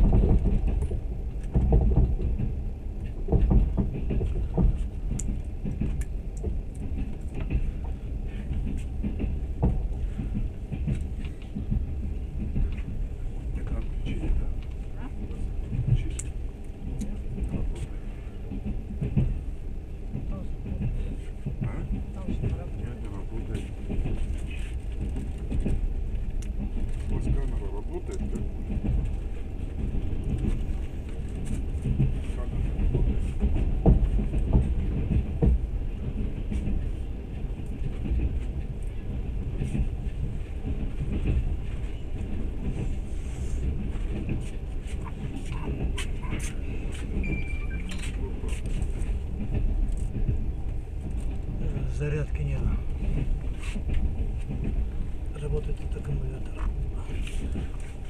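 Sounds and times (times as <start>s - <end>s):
train rumbling: 0.0s - 58.0s.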